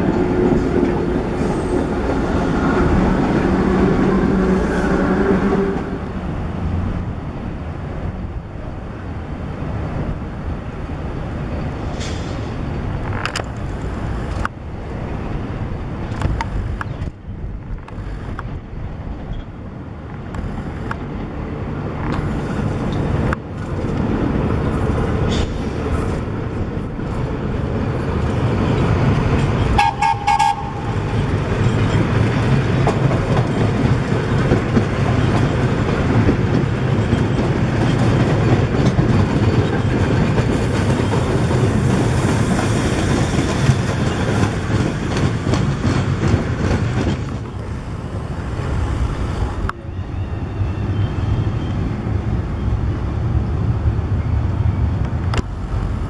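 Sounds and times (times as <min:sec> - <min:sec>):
subway train wheels on rail: 0:00.0 - 0:56.0
train horn toot: 0:03.7 - 0:06.2, 0:29.8 - 0:31.1.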